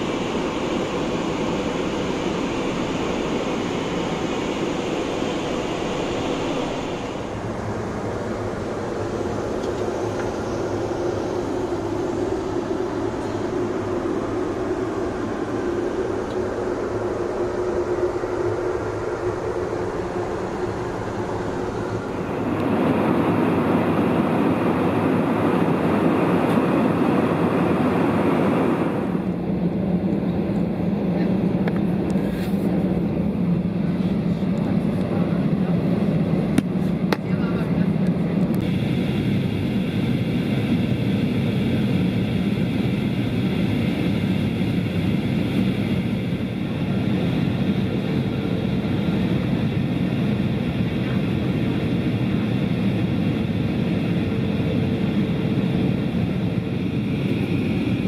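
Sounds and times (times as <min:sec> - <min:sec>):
airliner cabin airflow and engines: 0:00.0 - 0:58.0.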